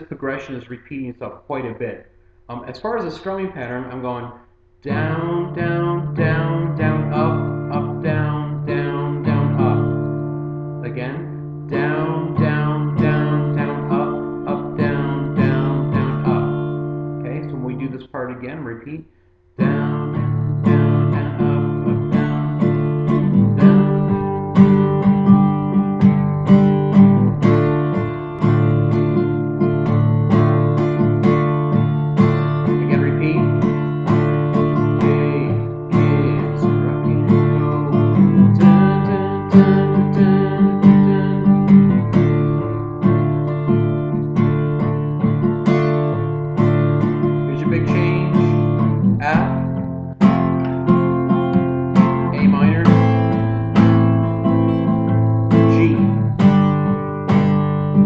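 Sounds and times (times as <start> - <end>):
acoustic guitar strumming: 2.2 - 58.0.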